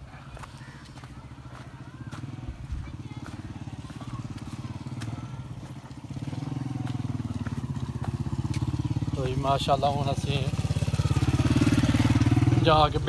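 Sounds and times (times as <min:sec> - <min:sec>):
small motorcycle engine running: 0:00.2 - 0:13.0.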